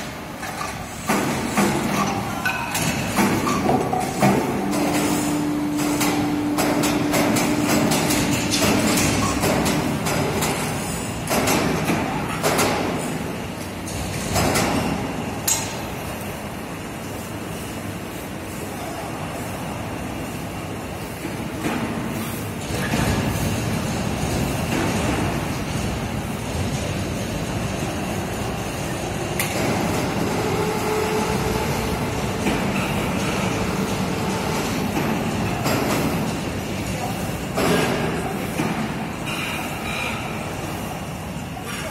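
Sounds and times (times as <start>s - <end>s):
heavy machinery rumble and clatter: 0.0s - 41.9s.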